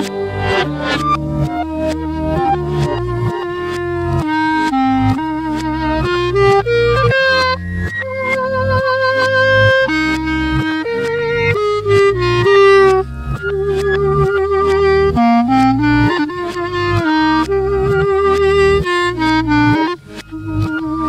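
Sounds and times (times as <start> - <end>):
band backing with steady beat: 0.0 - 21.0
reversed clarinet melody: 0.0 - 21.0.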